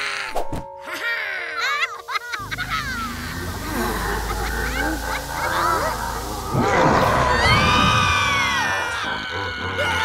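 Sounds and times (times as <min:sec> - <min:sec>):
swooping cartoon sound effect: 0:02.8 - 0:10.0
cartoon children cheering: 0:04.2 - 0:10.0.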